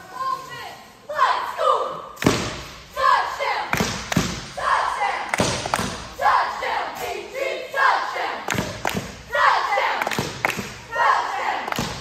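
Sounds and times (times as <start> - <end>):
cheerleaders shouting a cheer: 0.0 - 12.0.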